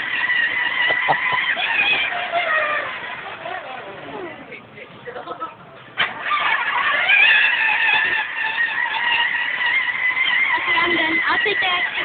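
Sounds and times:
toy electric motor whining: 0.0s - 3.9s, 6.0s - 12.0s.

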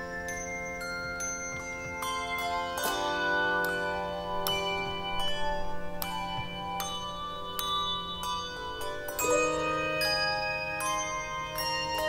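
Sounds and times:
handbells ringing: 0.0s - 12.0s.

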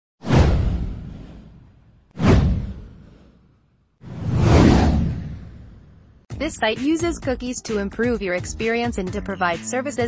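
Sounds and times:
whoosh sweeping down: 4.0s - 6.2s.

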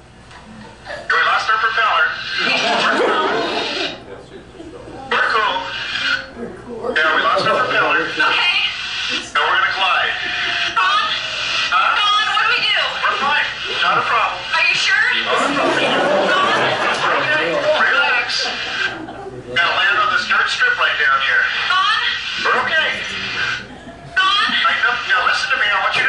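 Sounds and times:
indistinct voices talking: 0.8s - 26.0s.

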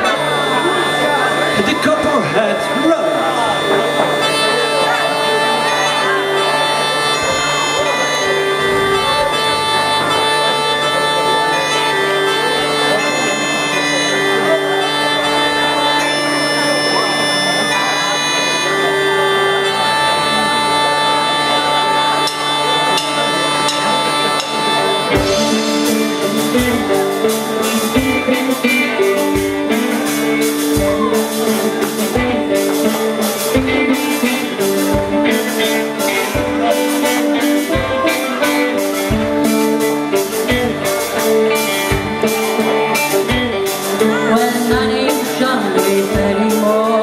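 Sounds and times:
bagpipe drone: 0.0s - 47.0s
drums and band playing: 0.0s - 47.0s
synthesized bagpipes melody: 0.0s - 47.0s.

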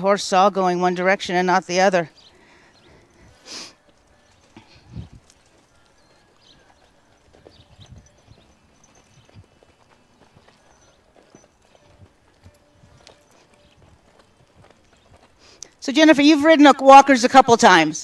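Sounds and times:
horse hooves on sand: 0.0s - 17.8s.

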